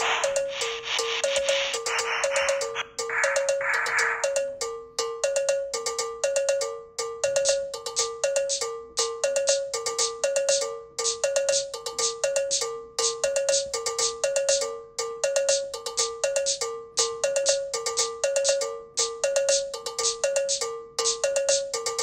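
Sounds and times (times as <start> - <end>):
looping synth bell-like notes: 0.0 - 5.7.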